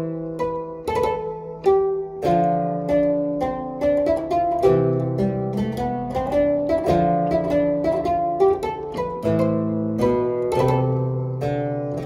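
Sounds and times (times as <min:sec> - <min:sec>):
harpsichord playing: 0:00.0 - 0:12.0.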